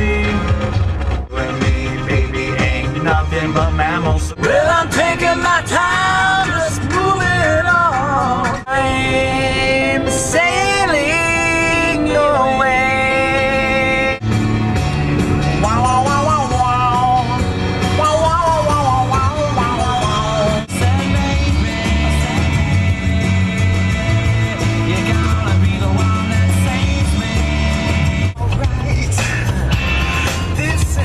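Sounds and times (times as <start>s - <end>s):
man singing loudly along: 0.0s - 0.6s, 1.3s - 14.2s, 15.6s - 29.6s, 30.6s - 31.0s
rock song on car radio: 0.0s - 31.0s.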